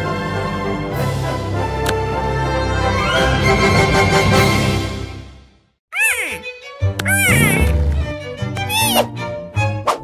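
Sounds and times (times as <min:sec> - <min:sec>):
background music: 0:00.0 - 0:10.0
cartoon character high calls: 0:05.9 - 0:06.4, 0:07.0 - 0:07.7, 0:08.6 - 0:09.1
light music: 0:06.0 - 0:10.0.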